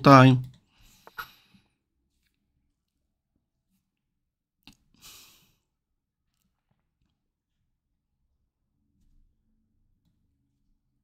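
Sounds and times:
short breath out: 5.0 - 5.6.

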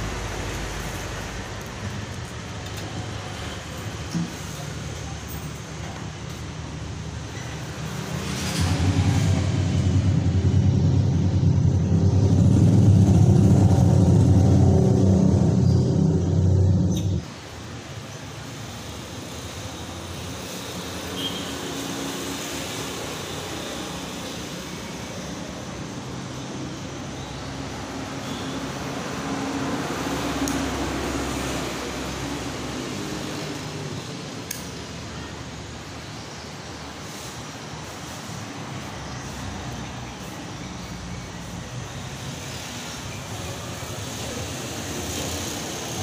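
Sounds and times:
low-pitched engine running: 8.0 - 17.2.

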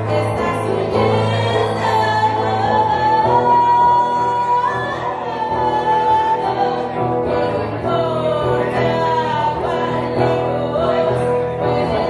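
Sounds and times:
electric guitar: 0.0 - 12.0.

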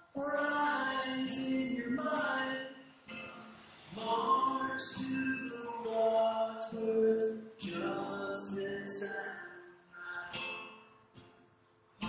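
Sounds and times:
man singing: 0.0 - 10.6
acoustic guitar: 0.0 - 12.0.

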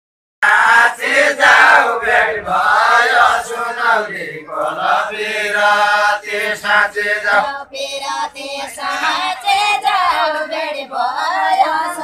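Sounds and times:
men singing unaccompanied: 0.4 - 12.0.

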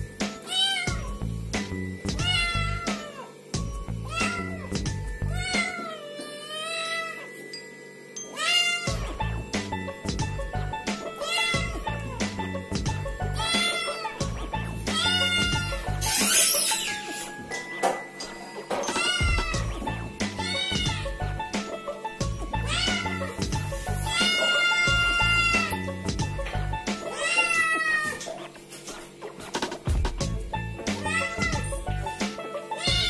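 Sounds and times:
background music with steady beat: 0.0 - 6.2, 7.4 - 33.0
kitten meowing: 0.5 - 1.1, 2.2 - 3.3, 4.0 - 4.7, 5.3 - 7.3, 11.2 - 11.9, 13.4 - 14.2, 18.9 - 19.6, 20.4 - 21.1, 22.6 - 23.4, 24.1 - 25.8, 27.1 - 28.2, 31.0 - 31.7, 32.8 - 33.0.

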